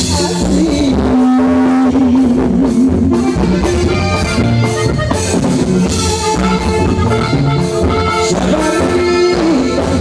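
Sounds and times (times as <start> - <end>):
bass guitar: 0.0 - 10.0
drum kit: 0.0 - 10.0
button accordion: 1.9 - 10.0
saxophone: 3.2 - 10.0.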